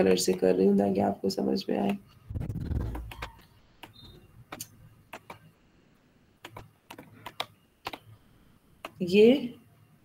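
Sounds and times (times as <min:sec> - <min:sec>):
computer mouse clicking: 0:01.8 - 0:05.5, 0:06.4 - 0:08.1, 0:08.8 - 0:09.0.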